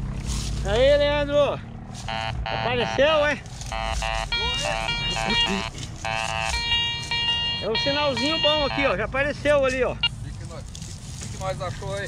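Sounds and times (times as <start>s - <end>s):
metal detector buzzy tone: 2.0s - 3.1s, 3.7s - 9.0s.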